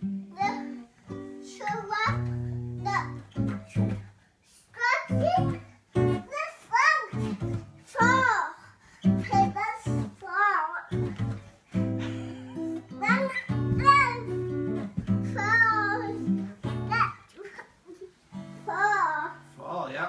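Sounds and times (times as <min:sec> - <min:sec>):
acoustic guitar strummed chords: 0:00.0 - 0:04.1, 0:05.1 - 0:08.4, 0:09.0 - 0:10.3, 0:10.9 - 0:17.2
child calling and singing: 0:00.3 - 0:03.9, 0:04.7 - 0:11.2, 0:12.9 - 0:19.5.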